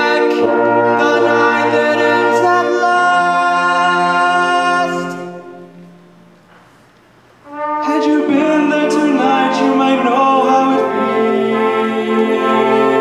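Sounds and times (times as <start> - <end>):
orchestral music: 0.0 - 6.5, 7.4 - 13.0.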